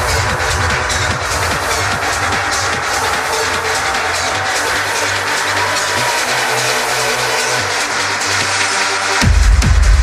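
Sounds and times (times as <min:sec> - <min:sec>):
electronic dance music: 0:00.0 - 0:10.0
sustained bassline: 0:00.0 - 0:10.0.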